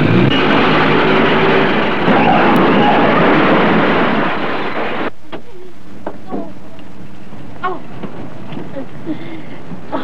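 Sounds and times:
car crash and clatter: 0:00.0 - 0:05.1.

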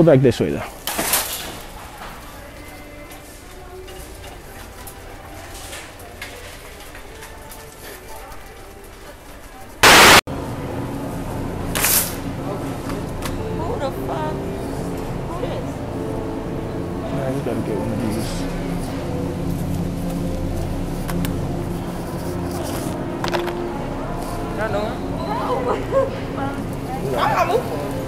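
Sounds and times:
tv static burst: 0:09.8 - 0:10.2
indistinct voices: 0:12.3 - 0:28.0.

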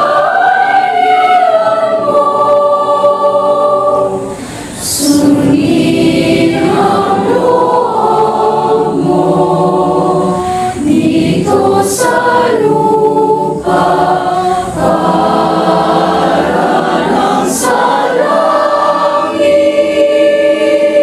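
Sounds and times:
choir singing in harmony: 0:00.0 - 0:21.0.

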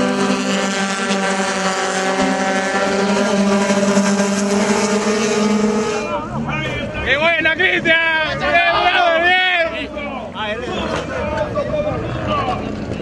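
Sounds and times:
race car engine running: 0:00.0 - 0:08.3.

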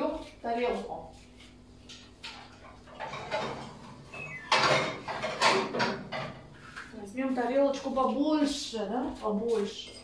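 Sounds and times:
dishes knocking and rattling: 0:01.9 - 0:06.5.

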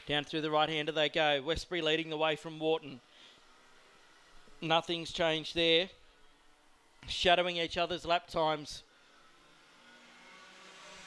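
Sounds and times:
racing go-kart engines: 0:09.0 - 0:11.0.

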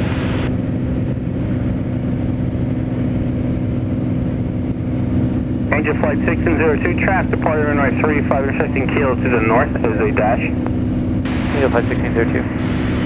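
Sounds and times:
small plane engine drone: 0:00.0 - 0:13.0
radio voice: 0:05.7 - 0:10.6, 0:11.3 - 0:12.8.

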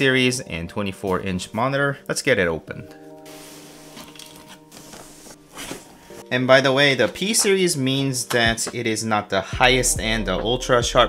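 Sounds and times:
background music with held tones: 0:00.0 - 0:11.0
cardboard box being pulled open: 0:04.8 - 0:06.2.

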